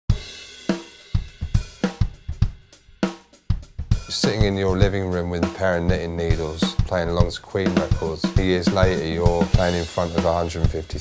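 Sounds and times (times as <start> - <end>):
drum kit strikes: 0.1 - 11.0.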